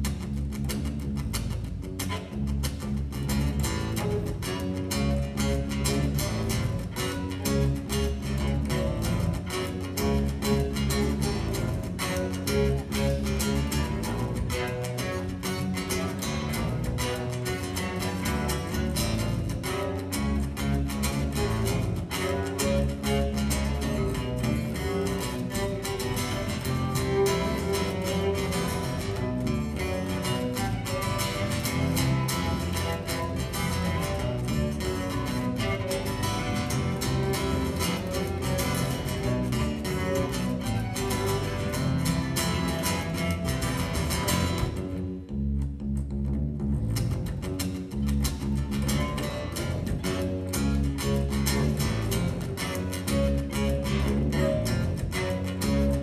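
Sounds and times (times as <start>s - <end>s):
strummed acoustic guitar: 0.0s - 45.3s, 47.0s - 56.0s
bowed cello: 2.0s - 56.0s.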